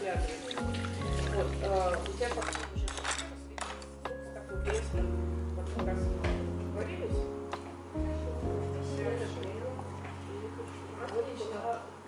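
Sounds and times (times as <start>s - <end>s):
water pouring: 0.0s - 3.2s
lofi music with bass line: 4.6s - 9.5s.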